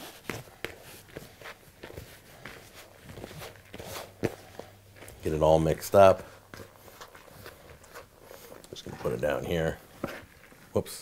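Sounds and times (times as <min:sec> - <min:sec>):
hands kneading dough in bowl: 0:00.0 - 0:11.0.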